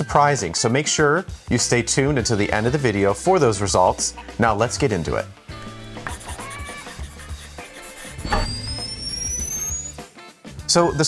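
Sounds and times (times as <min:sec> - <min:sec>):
hit: 0:08.2 - 0:09.0
high-pitched rising whoosh: 0:08.2 - 0:10.0.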